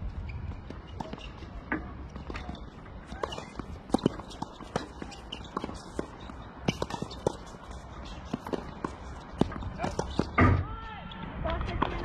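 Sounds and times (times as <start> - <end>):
footsteps on hard court: 0.1 - 10.6.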